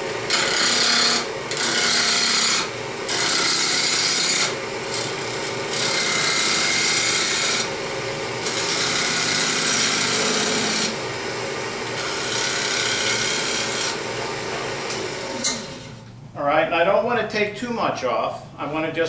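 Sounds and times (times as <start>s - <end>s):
gouge cutting wood on lathe: 0.0s - 16.0s
lathe humming: 0.0s - 16.0s.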